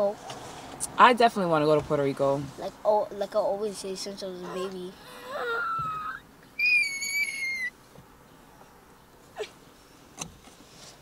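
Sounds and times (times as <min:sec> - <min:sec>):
child squealing: 0:04.4 - 0:07.7.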